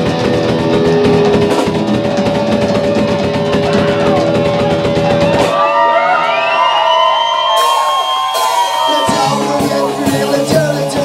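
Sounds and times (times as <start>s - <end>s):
distorted electric guitars: 0.0s - 6.7s, 7.4s - 11.0s
drum kit: 0.0s - 11.0s.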